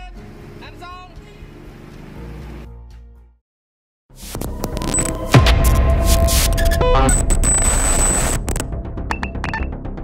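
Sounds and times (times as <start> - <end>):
glitchy digital noise: 4.2 - 8.7.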